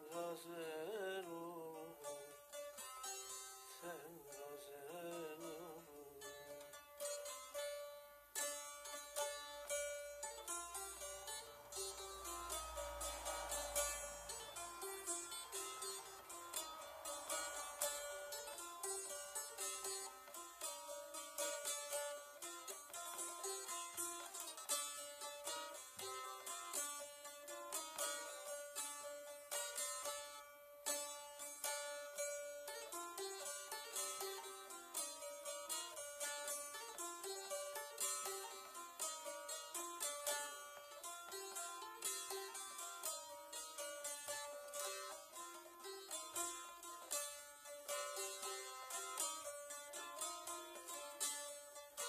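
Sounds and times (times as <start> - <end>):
saz picked and strummed: 0.0 - 52.0.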